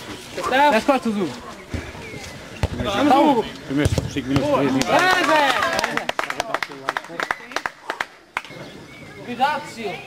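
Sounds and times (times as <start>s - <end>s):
faint voices calling: 0.0s - 5.7s, 7.1s - 10.0s.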